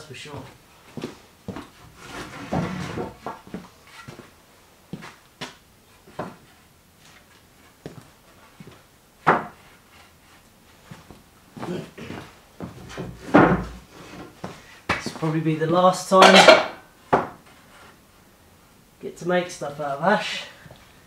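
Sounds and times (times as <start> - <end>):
wooden boards knocking: 13.1 - 13.8.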